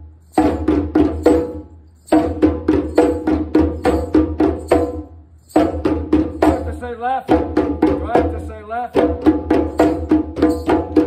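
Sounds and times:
djembe hand drumming: 0:00.4 - 0:11.0
man calling out: 0:06.6 - 0:07.4, 0:08.0 - 0:09.0.

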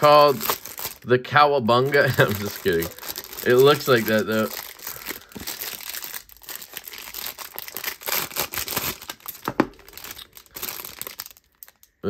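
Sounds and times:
packaging crinkling and rustling: 0:00.0 - 0:01.1, 0:01.7 - 0:11.9.

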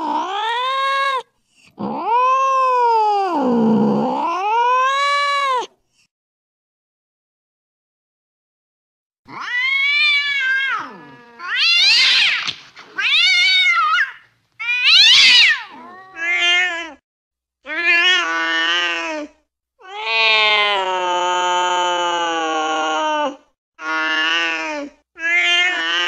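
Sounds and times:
cats yowling in a fight: 0:00.0 - 0:05.7, 0:09.3 - 0:17.0, 0:17.7 - 0:26.0.

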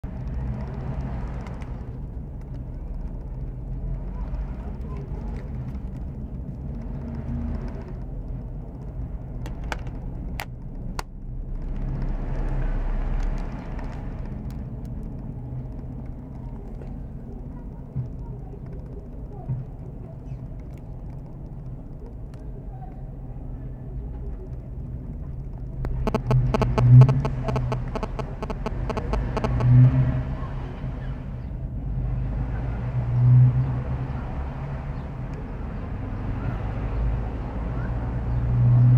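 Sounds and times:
low rumble of road traffic: 0:00.0 - 0:38.9.

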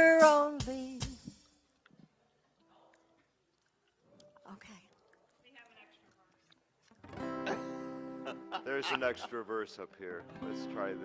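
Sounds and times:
acoustic guitar strumming: 0:07.0 - 0:11.0.

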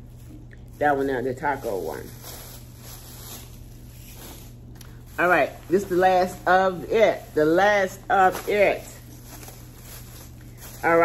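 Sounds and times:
rustling of packaged items: 0:00.0 - 0:11.0
steady low hum: 0:00.0 - 0:11.0.

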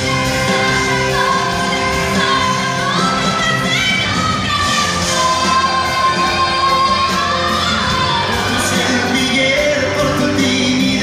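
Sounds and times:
pop ballad played by band: 0:00.0 - 0:11.0.

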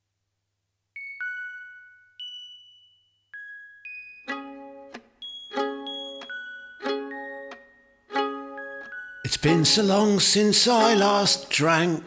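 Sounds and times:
bell-like notes ringing: 0:01.0 - 0:11.0.

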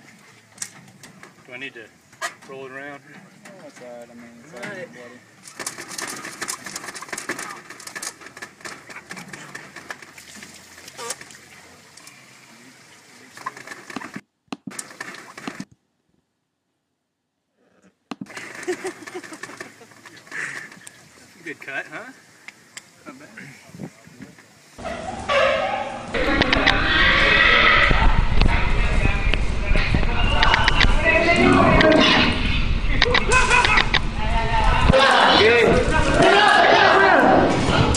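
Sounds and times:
chickens calling: 0:05.4 - 0:10.0, 0:18.3 - 0:21.1, 0:30.3 - 0:34.2
clicks and rustling: 0:05.4 - 0:11.4, 0:13.3 - 0:15.8, 0:18.1 - 0:21.0
indistinct voices: 0:22.8 - 0:37.9.

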